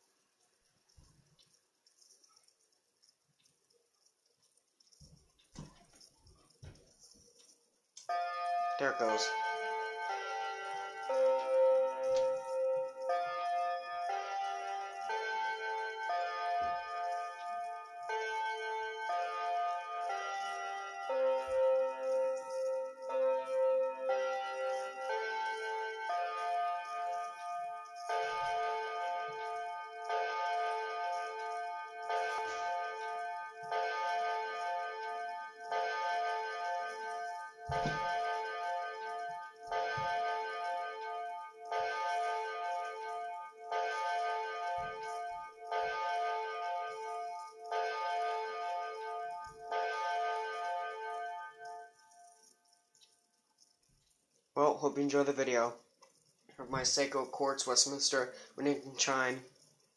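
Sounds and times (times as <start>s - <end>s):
clock chime melody: 4.6s - 59.9s
clock tolling hollow dong: 8.0s - 51.8s.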